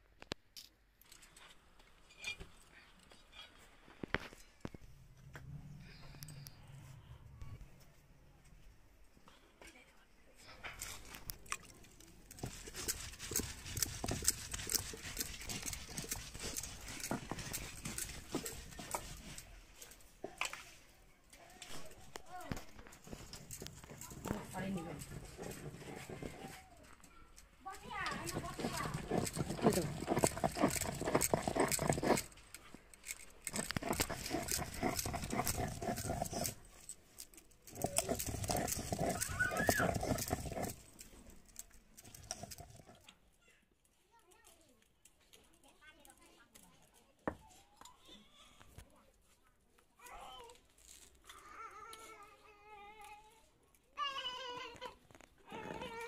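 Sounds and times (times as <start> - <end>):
stone roller scraping grinding stone: 10.8 - 20.6, 21.7 - 27.0, 27.6 - 43.1.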